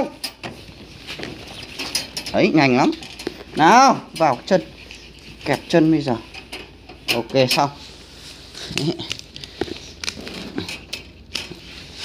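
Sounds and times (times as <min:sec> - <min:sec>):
wire cage clicks and sack rustling: 0:00.0 - 0:07.8, 0:08.6 - 0:12.0
person speaking: 0:02.3 - 0:06.3, 0:07.0 - 0:07.9, 0:08.6 - 0:09.4.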